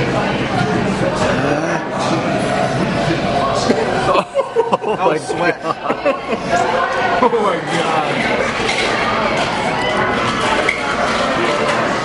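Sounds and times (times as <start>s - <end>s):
background chatter: 0.0s - 12.0s
dishes and cutlery clinking: 7.7s - 12.0s.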